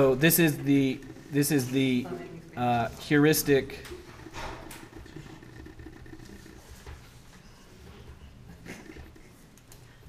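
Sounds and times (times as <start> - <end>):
low hum of room equipment: 0.0 - 10.0
pen scratching on paper: 3.0 - 7.6.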